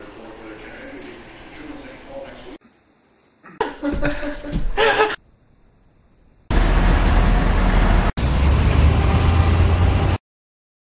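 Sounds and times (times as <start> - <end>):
loud steady rumbling: 6.5 - 10.2.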